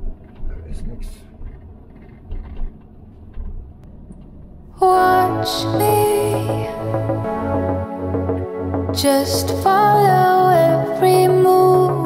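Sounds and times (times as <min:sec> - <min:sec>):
van engine and road rumble: 0:00.0 - 0:04.8.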